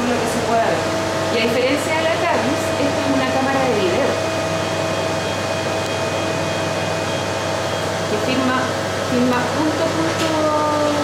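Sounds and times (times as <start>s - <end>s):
fan-like machine hum: 0.0s - 11.0s.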